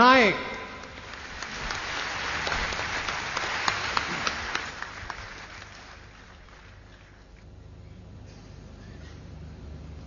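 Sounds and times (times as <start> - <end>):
audience applause: 0.8 - 7.4.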